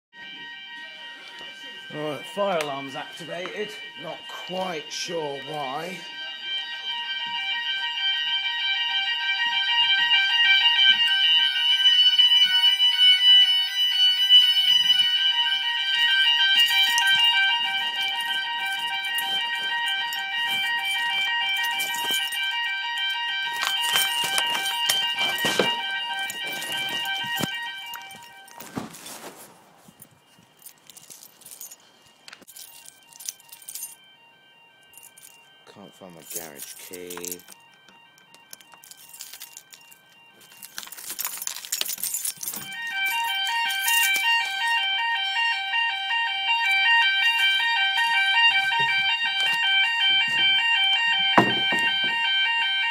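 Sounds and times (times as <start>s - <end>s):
faint broken alarm tone: 0.1s - 52.9s
shrill fire alarm tone: 0.1s - 52.9s
knocks: 51.3s - 52.2s.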